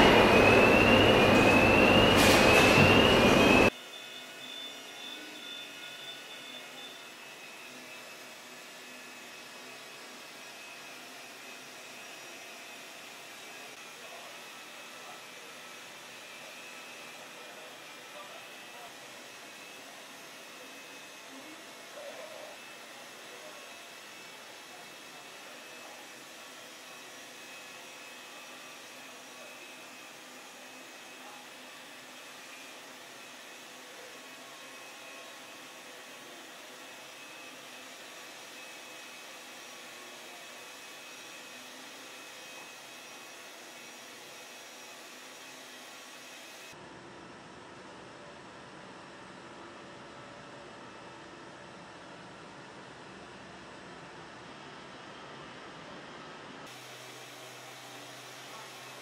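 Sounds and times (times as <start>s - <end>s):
rotary polisher whirring: 0.0s - 46.8s, 56.6s - 59.0s
workshop air noise: 0.0s - 47.3s, 55.2s - 59.0s.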